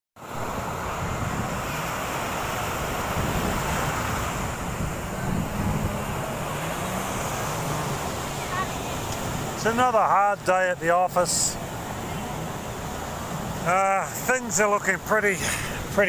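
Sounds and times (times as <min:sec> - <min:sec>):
small surf breaking on sand: 0:00.2 - 0:16.0
wind on microphone: 0:00.3 - 0:09.6.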